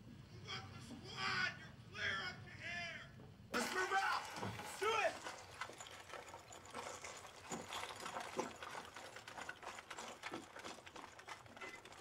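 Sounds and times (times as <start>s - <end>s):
faint clicking and crackling: 4.7s - 12.0s.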